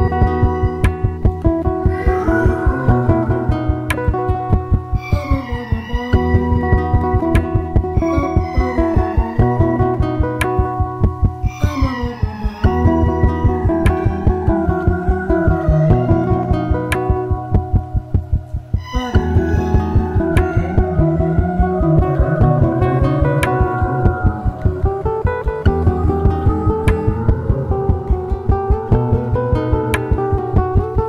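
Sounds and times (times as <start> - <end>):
guitar: 0.0 - 31.0
low throbbing pulse: 0.0 - 31.0
sustained pitched notes: 0.0 - 31.0.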